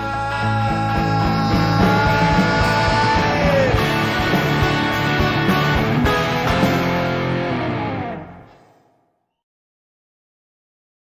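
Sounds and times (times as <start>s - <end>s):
rock band playing: 0.0s - 8.8s.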